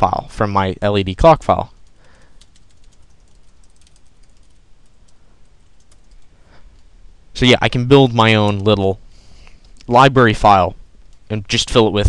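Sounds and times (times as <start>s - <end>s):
keyboard typing: 1.7s - 6.9s.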